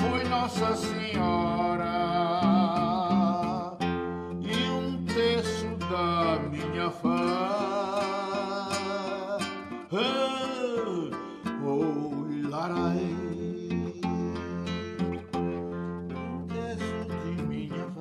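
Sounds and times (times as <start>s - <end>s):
man singing: 0.0s - 18.0s
strummed acoustic guitar: 0.0s - 18.0s.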